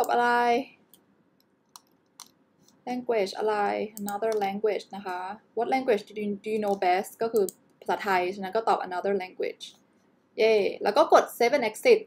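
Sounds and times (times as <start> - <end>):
computer mouse clicks: 0.9 - 2.8, 4.0 - 4.5, 6.6 - 7.8.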